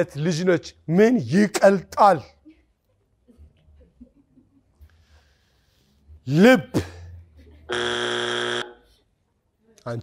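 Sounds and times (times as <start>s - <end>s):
electronic buzzer: 7.7s - 8.8s.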